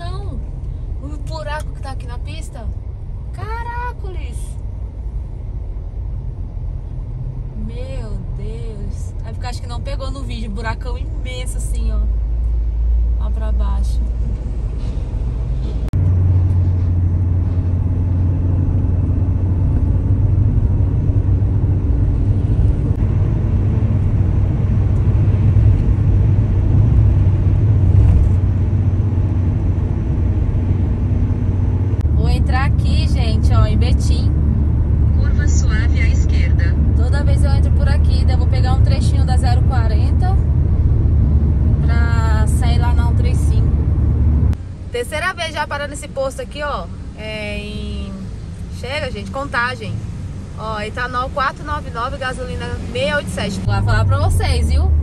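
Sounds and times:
car driving on highway: 0:00.0 - 0:55.0.

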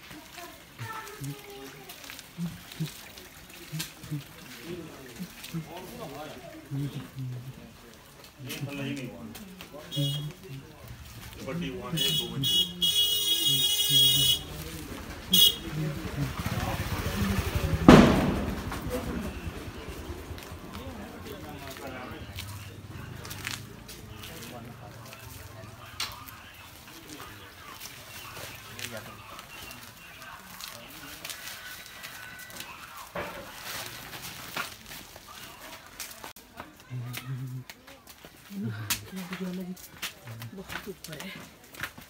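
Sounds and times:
people talking: 0:00.0 - 0:34.4, 0:35.2 - 0:41.6
footsteps: 0:13.5 - 0:42.0
motor scooter passing: 0:14.4 - 0:25.8
sharp loud thump: 0:17.8 - 0:19.0.

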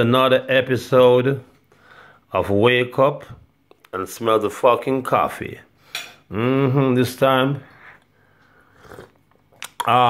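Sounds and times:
man sipping coffee: 0:07.7 - 0:09.9.

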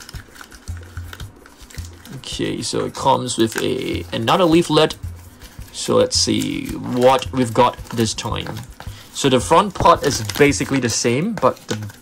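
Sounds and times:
plastic rustling: 0:00.0 - 0:12.0
soft background music: 0:00.0 - 0:12.0.

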